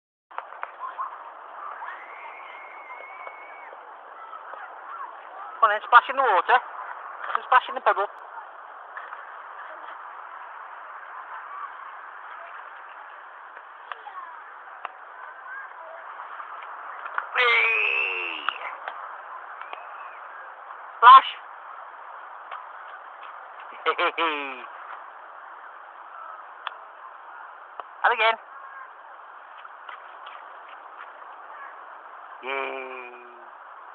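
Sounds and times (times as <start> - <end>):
beach noise: 0.3 - 33.9
wind and water hiss: 0.3 - 33.9
long high call: 0.7 - 5.6.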